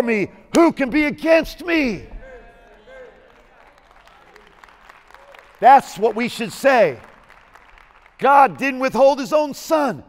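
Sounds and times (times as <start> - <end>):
faint scattered applause: 2.5 - 8.8.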